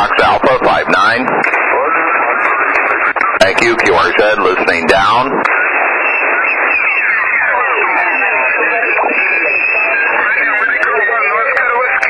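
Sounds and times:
many voices over radio: 0:00.0 - 0:12.0.

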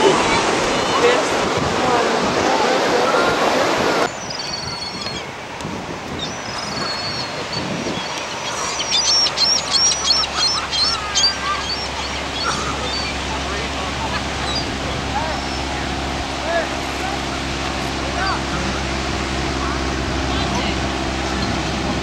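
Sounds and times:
surf: 0:00.0 - 0:22.0
birds chirping: 0:03.2 - 0:22.0.

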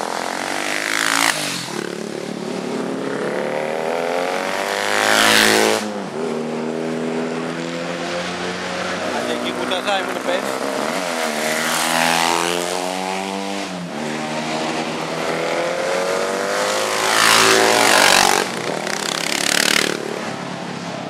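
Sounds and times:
racing motorcycles revving past: 0:00.0 - 0:21.0.

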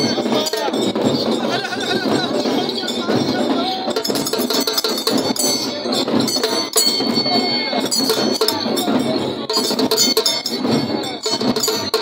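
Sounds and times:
bells and sword jingling: 0:00.0 - 0:12.0
crowd voices: 0:00.0 - 0:12.0.

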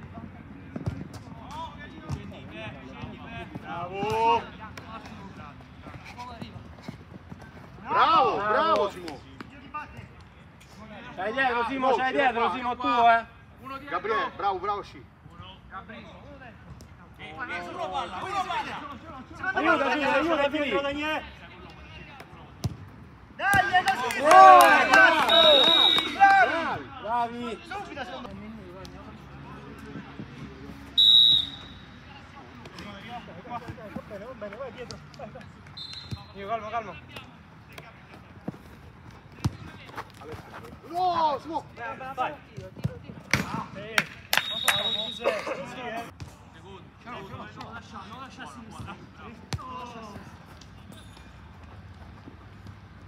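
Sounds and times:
players shouting: 0:02.5 - 0:05.5, 0:07.8 - 0:09.2, 0:17.2 - 0:21.2, 0:23.4 - 0:28.2
referee whistle blast: 0:25.2 - 0:26.2, 0:31.0 - 0:31.8, 0:35.8 - 0:36.3, 0:44.3 - 0:45.3.

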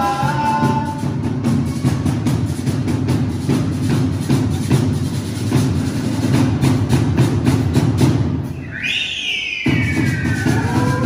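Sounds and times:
drum strokes: 0:00.0 - 0:11.0.

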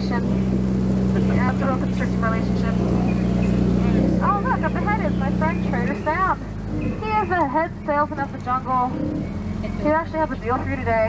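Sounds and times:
boat motor droning: 0:00.0 - 0:11.0
voices: 0:00.0 - 0:11.0.

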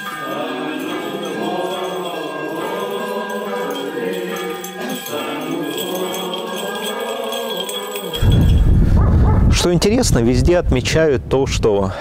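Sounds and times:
choir singing held notes: 0:00.0 - 0:08.6
censer bells jingling: 0:00.0 - 0:09.0
wind rumble on microphone: 0:08.2 - 0:12.0.

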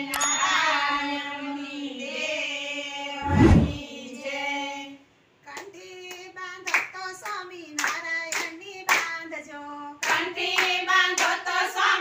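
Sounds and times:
women singing in unison: 0:00.0 - 0:12.0
hand claps: 0:05.5 - 0:09.2, 0:10.0 - 0:11.4.

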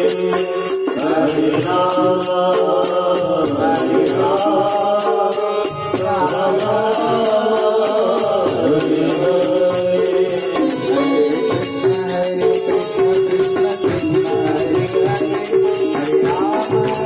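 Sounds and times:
devotional chanting: 0:00.0 - 0:17.0
fast percussive beat: 0:00.0 - 0:17.0
sustained accompanying tones: 0:00.0 - 0:17.0.

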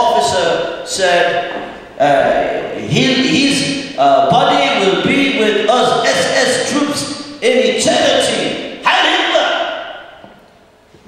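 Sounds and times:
man shouting into a microphone: 0:00.0 - 0:10.2.

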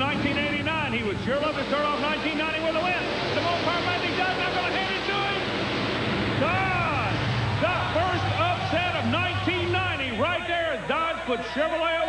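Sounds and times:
arena crowd noise: 0:00.0 - 0:12.0
monster truck engines roaring: 0:00.0 - 0:12.0.

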